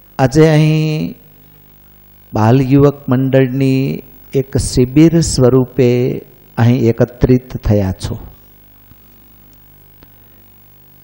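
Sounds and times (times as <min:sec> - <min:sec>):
man chanting into a microphone: 0:00.2 - 0:01.2, 0:02.3 - 0:08.4.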